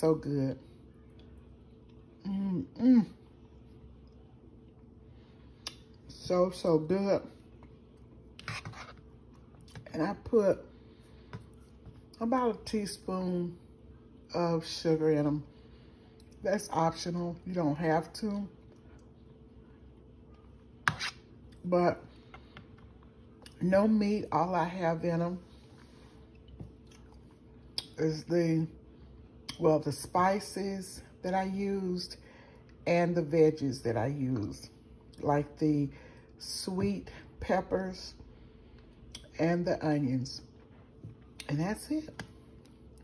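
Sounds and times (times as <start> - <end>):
soft eating sounds: 0.6 - 14.4, 15.3 - 16.5, 17.3 - 24.5, 25.2 - 29.6, 32.2 - 32.9, 34.4 - 35.3, 38.1 - 39.4, 40.4 - 43.0
chewing soft food: 0.8 - 2.2, 3.3 - 6.1, 18.5 - 23.6, 25.5 - 27.9.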